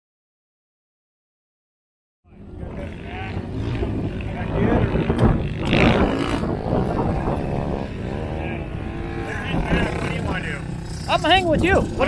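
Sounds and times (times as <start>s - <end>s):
people talking: 2.3s - 12.0s
quad engines running: 2.3s - 12.0s.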